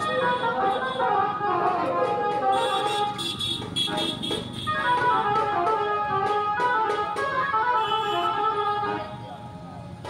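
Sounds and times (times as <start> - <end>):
vehicle horn: 0.0 - 6.6, 7.5 - 9.2
street noise: 0.0 - 10.0.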